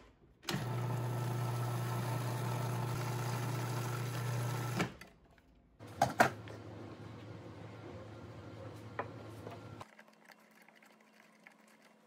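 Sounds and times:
food processor motor running: 0:00.5 - 0:04.8.

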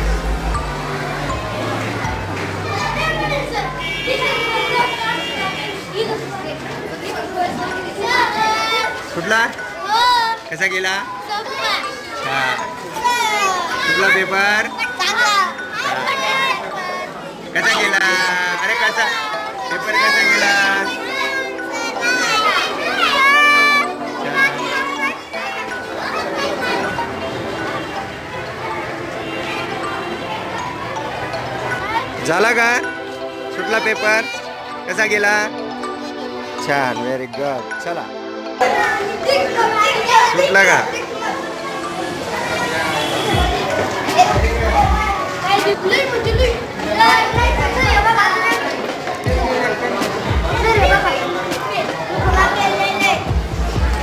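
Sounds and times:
children talking at once: 0:00.0 - 0:54.0
girls chattering and laughing: 0:00.0 - 0:54.0.

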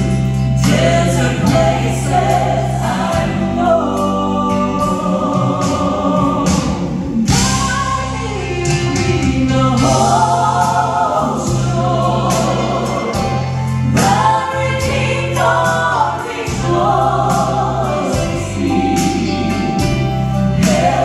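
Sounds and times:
instrumental accompaniment: 0:00.0 - 0:21.0
people singing in harmony: 0:00.0 - 0:21.0.

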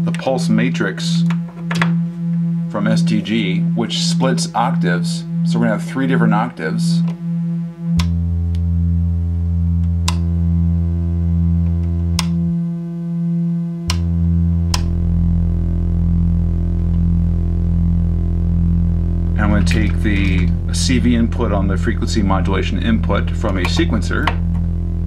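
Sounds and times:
low octave synth tones: 0:00.0 - 0:25.0
synthesizer drone: 0:00.0 - 0:25.0.

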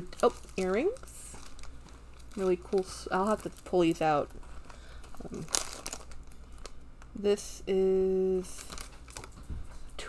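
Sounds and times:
plastic bag crinkling: 0:00.0 - 0:07.2, 0:08.3 - 0:09.8.

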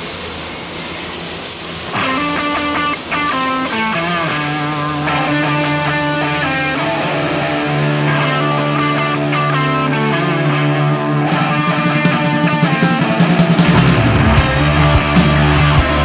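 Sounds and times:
electric guitar lines: 0:00.0 - 0:16.0
rock band playing: 0:01.9 - 0:16.0
held low bass note: 0:13.7 - 0:16.0.

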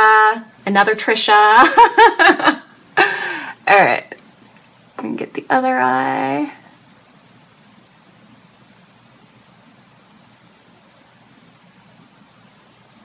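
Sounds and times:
faint background hiss: 0:00.0 - 0:13.0.

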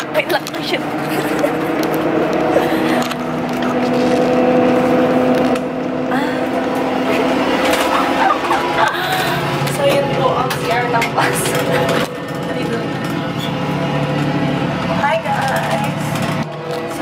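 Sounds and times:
moving bus drone: 0:00.0 - 0:17.0
woman laughing and exclaiming: 0:07.1 - 0:09.7.

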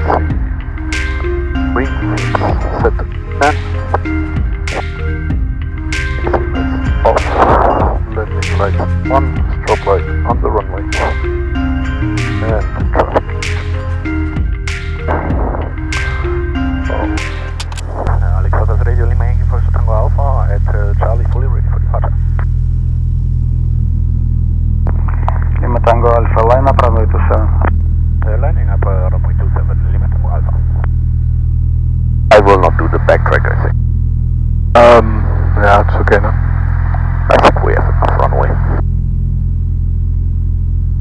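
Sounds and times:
people talking: 0:00.0 - 0:00.4, 0:01.6 - 0:03.6, 0:06.2 - 0:11.2, 0:12.2 - 0:13.5, 0:16.8 - 0:22.4, 0:24.9 - 0:30.9, 0:32.3 - 0:33.8, 0:34.8 - 0:36.4, 0:37.0 - 0:38.8
music playing: 0:00.0 - 0:23.4, 0:24.4 - 0:31.5, 0:32.3 - 0:33.8, 0:34.7 - 0:38.8
aircraft engine droning in cabin: 0:16.9 - 0:31.6, 0:32.3 - 0:33.8, 0:34.8 - 0:41.0.

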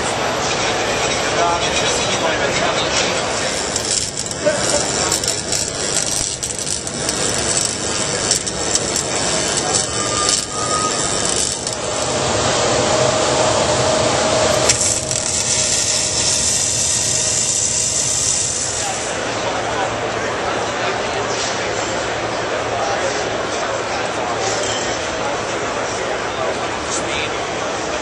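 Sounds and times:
crowd noise: 0:00.0 - 0:28.0
welding arc hissing: 0:02.7 - 0:19.2
clinks: 0:02.9 - 0:11.8.

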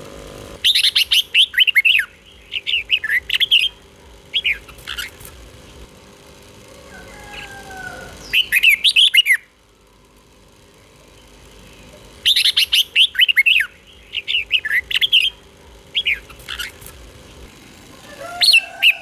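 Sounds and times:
bird singing whistled notes: 0:00.6 - 0:04.7, 0:08.2 - 0:09.5.

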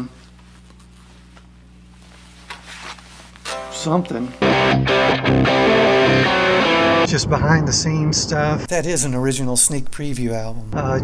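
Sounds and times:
guitar amplifier hum: 0:00.0 - 0:11.0.

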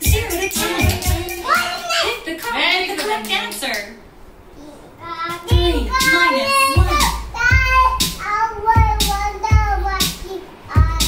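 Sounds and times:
low rhythmic thumps: 0:00.0 - 0:01.9, 0:05.2 - 0:11.0
child singing: 0:00.0 - 0:02.2, 0:04.6 - 0:11.0.

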